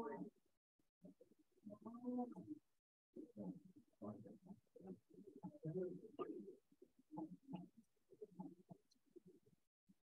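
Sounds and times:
muffled voices chatting: 0:03.2 - 0:09.4.

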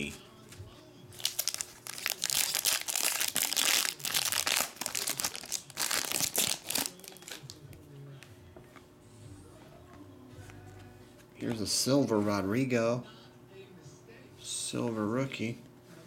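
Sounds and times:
foil wrapper crinkling: 0:01.2 - 0:07.6.

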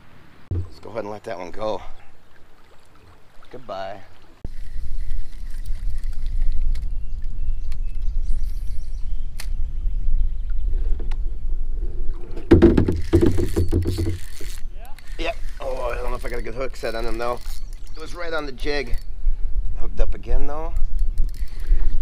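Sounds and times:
wind buffeting microphone: 0:04.6 - 0:13.1.

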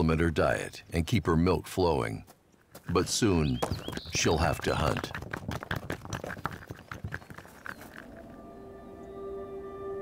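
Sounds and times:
sustained music tones: 0:08.0 - 0:10.0.

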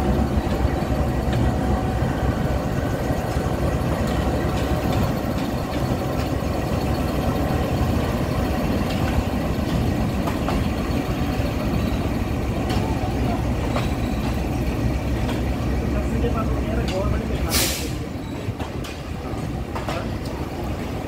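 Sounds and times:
diesel locomotive rumble: 0:00.0 - 0:21.0.

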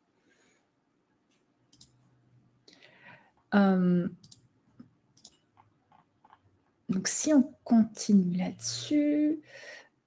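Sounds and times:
faint clicks: 0:01.3 - 0:02.0, 0:04.2 - 0:06.4.

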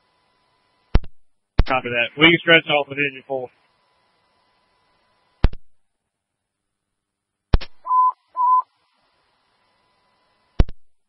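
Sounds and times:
short radio beeps: 0:07.8 - 0:08.7.

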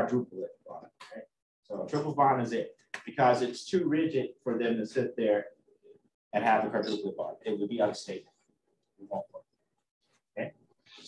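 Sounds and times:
man speaking in clipped fragments: 0:00.0 - 0:03.9, 0:06.4 - 0:08.3.

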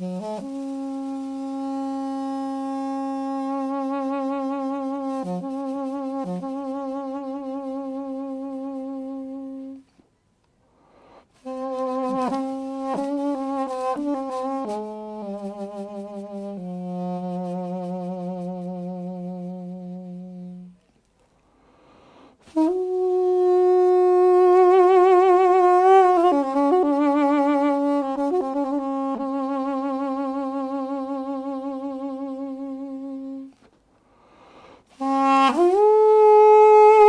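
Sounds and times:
double-reed wind instrument note: 0:00.0 - 0:10.1, 0:10.9 - 0:21.0, 0:21.8 - 0:37.0.

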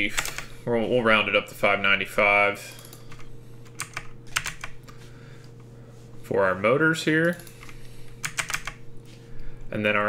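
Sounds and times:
computer keyboard keystrokes: 0:00.1 - 0:00.5, 0:02.7 - 0:05.0, 0:07.2 - 0:08.8.

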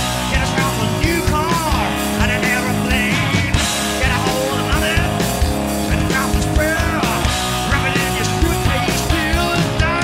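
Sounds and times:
bass guitar: 0:00.0 - 0:10.0
drums with steady beat: 0:00.0 - 0:10.0
electric guitar: 0:00.0 - 0:10.0
person singing: 0:00.2 - 0:05.3, 0:05.9 - 0:10.0.

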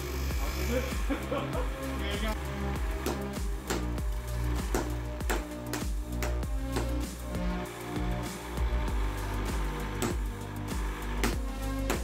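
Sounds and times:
music with sustained chords: 0:00.0 - 0:12.0.

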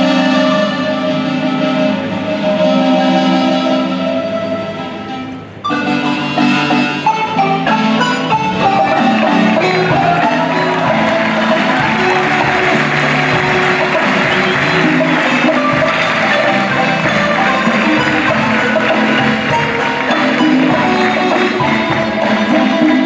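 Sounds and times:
marimbas playing: 0:05.7 - 0:23.0
drum kit and hand drums: 0:08.4 - 0:23.0.

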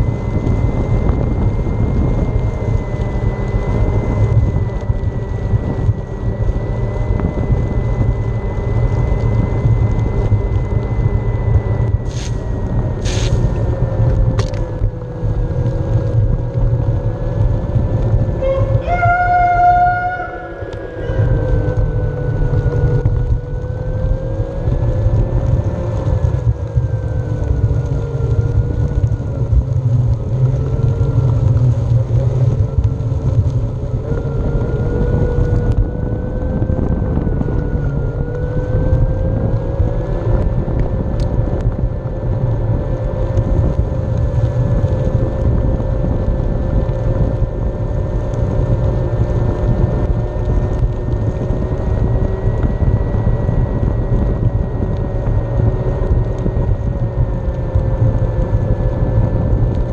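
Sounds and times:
tyre rumble on asphalt: 0:00.0 - 0:18.9
electric motor whining: 0:00.0 - 0:41.9
wind on microphone: 0:00.0 - 0:59.9.

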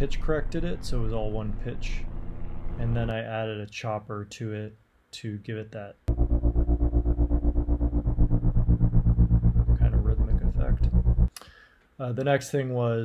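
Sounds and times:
pulsing droning synth pad: 0:06.1 - 0:11.3.

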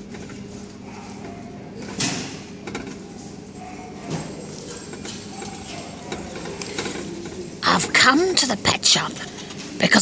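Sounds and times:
exercise wheel clicking and clattering: 0:00.0 - 0:09.8
steady low hum: 0:00.0 - 0:10.0.

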